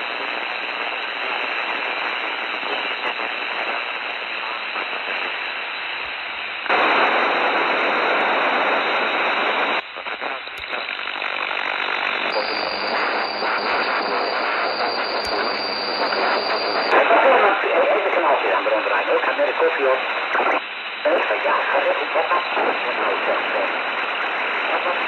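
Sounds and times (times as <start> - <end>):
radio hiss and static: 0.0 - 25.0
sharp radio clicks: 10.4 - 17.0
garbled radio voice: 16.8 - 23.9, 24.5 - 25.0.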